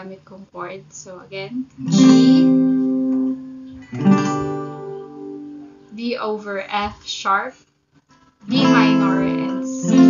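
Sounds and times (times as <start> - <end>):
acoustic guitar chords: 0.0 - 7.3, 8.0 - 10.0.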